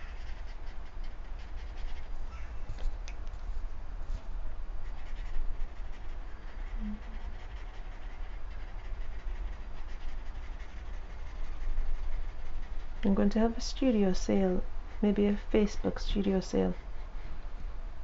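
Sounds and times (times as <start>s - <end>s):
drawing tool scratching on paper: 4.8s - 17.1s.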